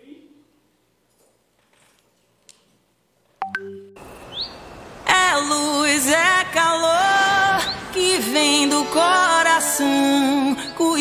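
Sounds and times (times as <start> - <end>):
rising bird chirp: 3.4 - 4.9.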